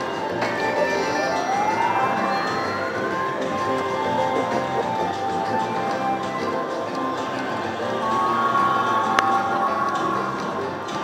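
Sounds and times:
slot machine bonus music: 0.0 - 10.4
slot machine reel sounds: 0.0 - 11.0.

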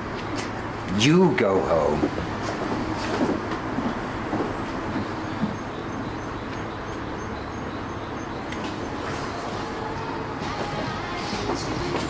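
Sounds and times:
passing vehicle rumble: 0.0 - 12.0.

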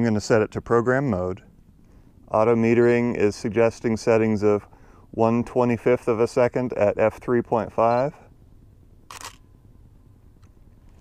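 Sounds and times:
camera shutter click: 9.1 - 9.4.

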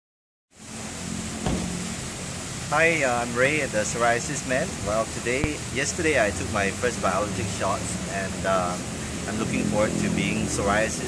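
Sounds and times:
background hiss: 0.6 - 9.5
short knock: 1.4 - 1.8.

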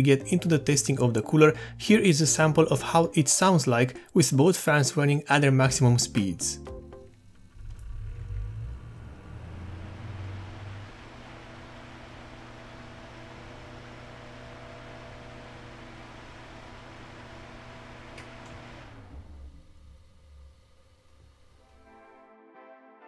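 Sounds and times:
heavy low rumble: 7.5 - 12.3.

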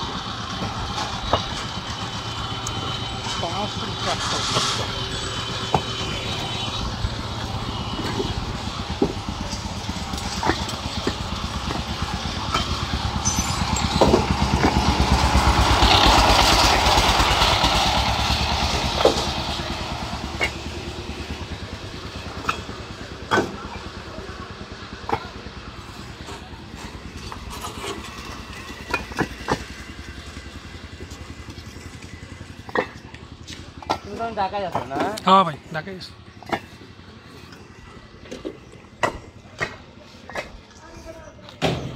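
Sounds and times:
diesel engine chugging: 0.0 - 41.9
sharp knocks and rattles: 7.8 - 21.4.

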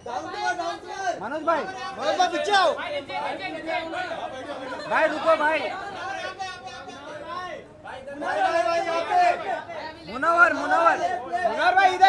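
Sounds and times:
voices talking and shouting: 0.0 - 12.0.

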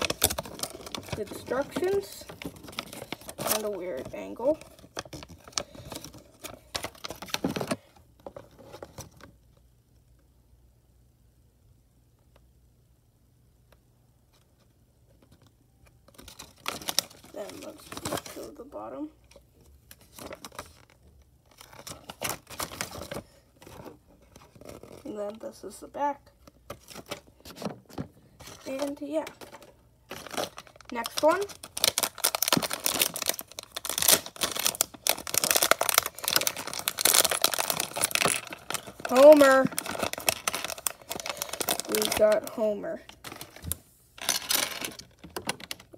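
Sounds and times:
paper leaflet rustling and crackling: 0.0 - 7.7, 26.7 - 45.9
plastic bag crinkling and tearing: 0.0 - 7.8, 16.1 - 18.7, 19.9 - 25.2, 28.4 - 45.9.

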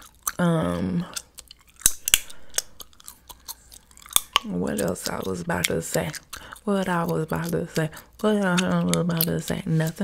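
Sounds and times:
gum chewing mouth clicks: 0.0 - 10.0.

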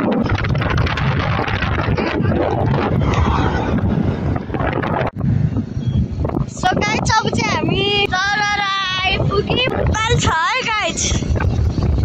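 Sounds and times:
motorcycle rumble: 0.0 - 12.0
wind buffeting microphone: 0.0 - 12.0.

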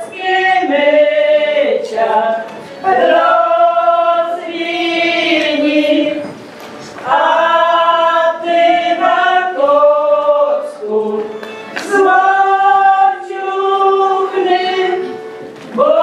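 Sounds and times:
folk group singing: 0.0 - 16.0.

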